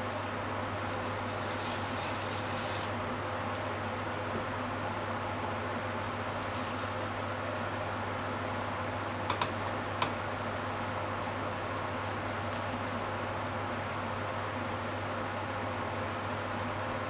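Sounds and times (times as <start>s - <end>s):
low hum and hiss: 0.0s - 17.0s
scraping strokes on a grater: 0.1s - 3.0s.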